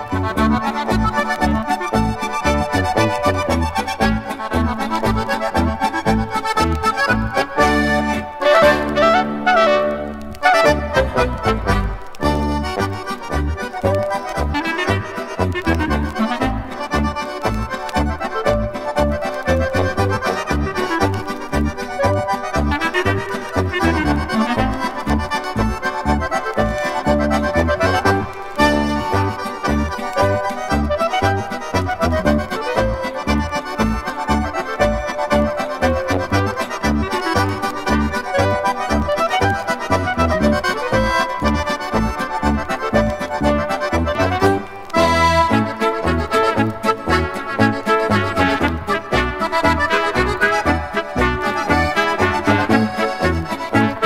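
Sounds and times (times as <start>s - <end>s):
accordion melody: 0.0s - 54.0s
oom-pah bass beat: 0.0s - 54.0s.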